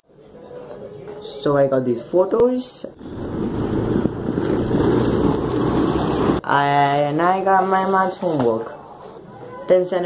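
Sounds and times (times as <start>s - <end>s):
vehicle rumbling on board: 3.0s - 6.4s.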